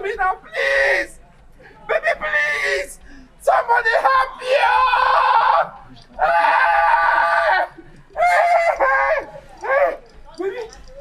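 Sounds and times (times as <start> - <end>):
man breathing: 3.0 - 3.4.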